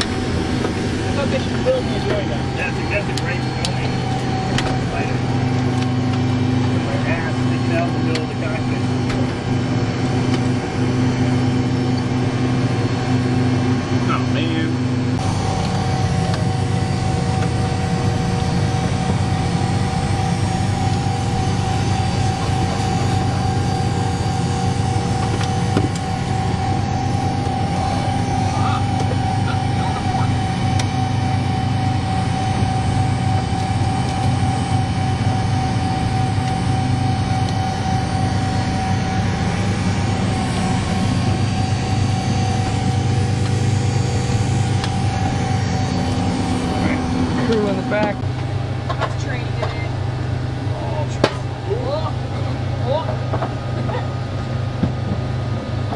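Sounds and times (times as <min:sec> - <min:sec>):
low hum of cooling fans: 0:00.0 - 0:55.9
steady whine: 0:00.0 - 0:55.9.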